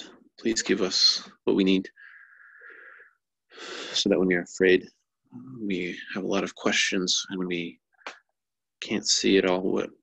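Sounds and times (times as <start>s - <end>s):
man speaking: 4.0s - 7.8s, 8.8s - 10.0s.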